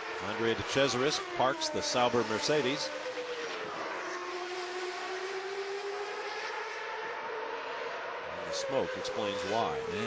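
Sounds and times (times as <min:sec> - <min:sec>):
racing car engine: 0:00.0 - 0:10.0.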